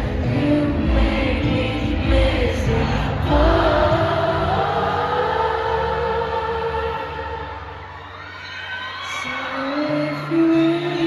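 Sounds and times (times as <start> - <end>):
crowd cheering and singing along: 0.0 - 11.0
slow sung melody over bass: 0.0 - 11.0.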